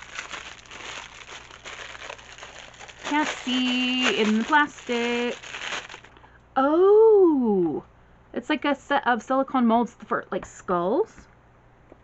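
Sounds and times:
plastic wrapping crinkling: 0.0s - 6.2s.

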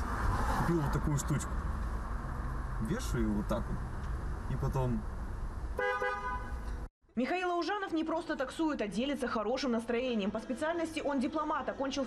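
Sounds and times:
car horn two-tone honk: 5.8s - 6.7s.

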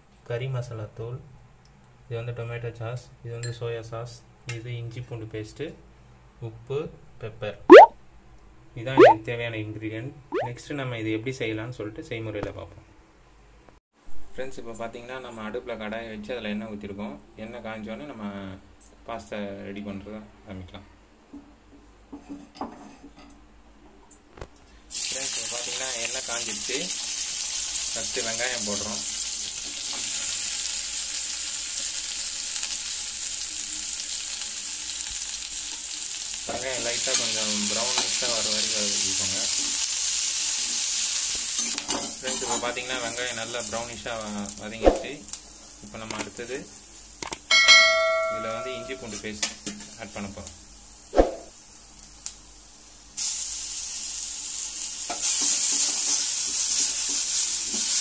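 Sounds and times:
person speaking: 9.0s - 9.2s, 48.1s - 49.2s
onions sizzling in oil: 24.9s - 47.2s, 48.6s - 58.0s
spatula stirring pan: 55.1s - 58.0s.

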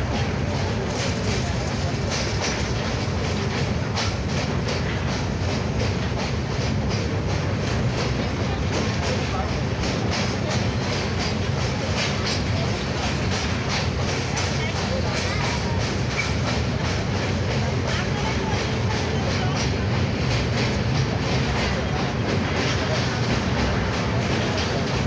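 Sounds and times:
rapid wheel clatter: 0.0s - 25.0s
train rumbling over steel bridge: 0.0s - 25.0s.

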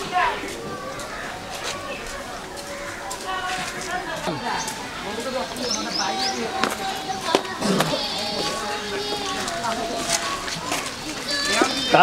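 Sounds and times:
chatter of voices: 0.0s - 12.0s
children calling and playing: 0.0s - 12.0s.

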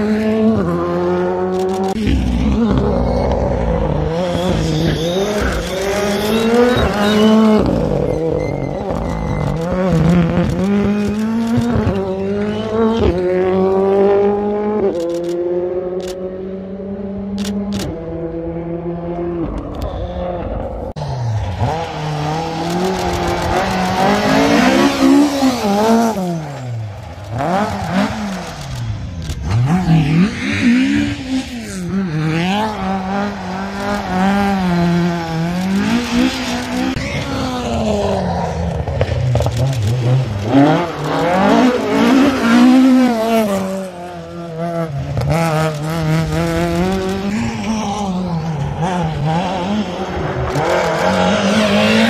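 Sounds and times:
rally car engines revving: 0.0s - 52.0s.

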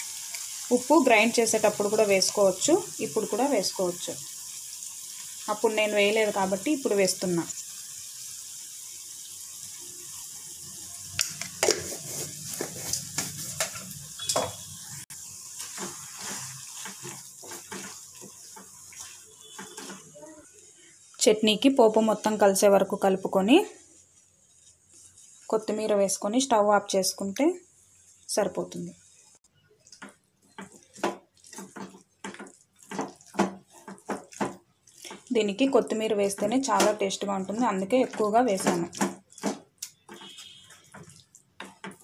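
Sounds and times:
sizzling hiss: 0.0s - 29.4s
spatula scraping and knocking pan: 15.6s - 20.1s, 29.9s - 35.3s, 38.0s - 42.0s.

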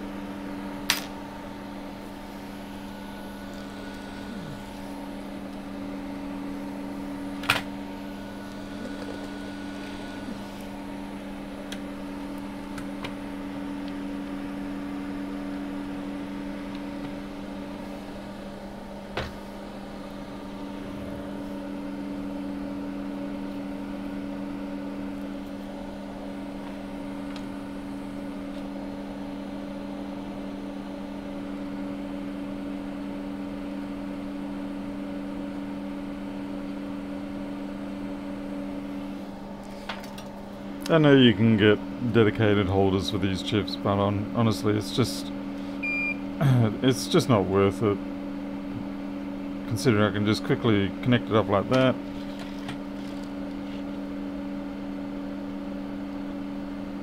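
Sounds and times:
electrical machine hum: 0.0s - 57.0s.

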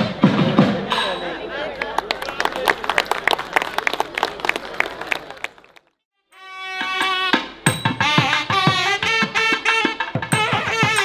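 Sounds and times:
audience applauding: 1.7s - 5.9s.

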